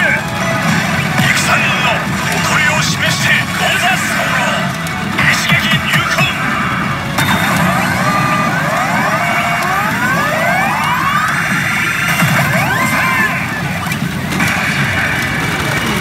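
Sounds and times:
overlapping rising tones: 0.0s - 16.0s
pachinko machine music: 0.0s - 16.0s.

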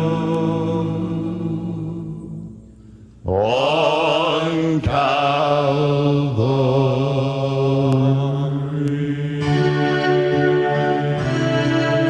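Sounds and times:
male ensemble singing chords: 0.0s - 12.0s.

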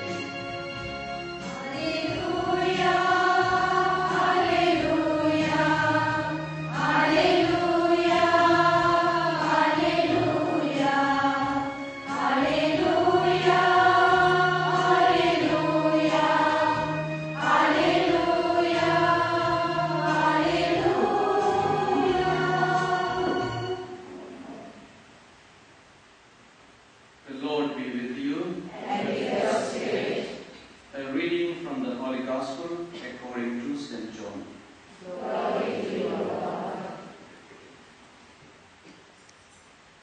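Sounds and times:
instrumental accompaniment: 0.0s - 24.6s
choir singing a hymn: 0.0s - 24.8s, 28.6s - 30.6s, 35.0s - 37.3s.

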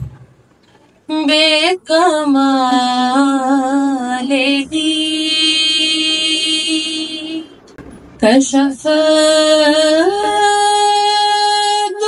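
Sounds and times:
woman singing unaccompanied: 1.1s - 7.5s, 8.2s - 12.0s.

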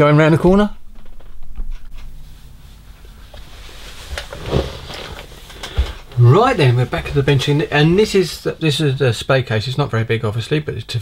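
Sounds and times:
handling noise rumble: 0.9s - 9.0s.

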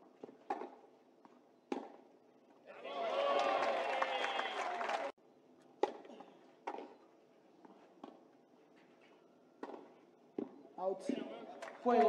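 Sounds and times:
racket striking tennis ball: 0.2s - 0.8s, 1.7s - 2.0s, 5.8s - 6.9s, 9.6s - 10.6s.

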